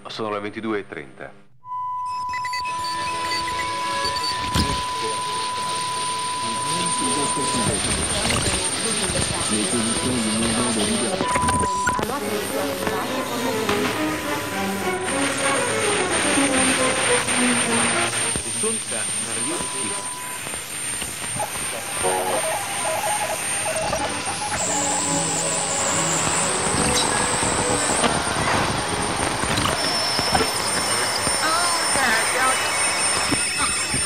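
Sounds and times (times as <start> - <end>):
high radio whistle: 1.6 - 34.0
scraps of radio music and voices: 2.8 - 34.0
radio static and hiss: 3.0 - 34.0
held mid-pitched tone: 21.8 - 33.6.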